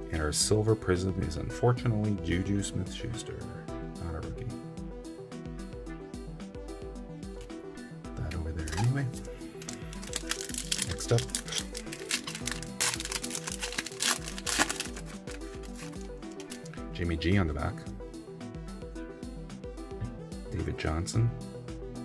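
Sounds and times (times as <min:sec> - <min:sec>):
background music: 0:00.0 - 0:22.0
foil wrapper crinkling and tearing: 0:08.6 - 0:16.8.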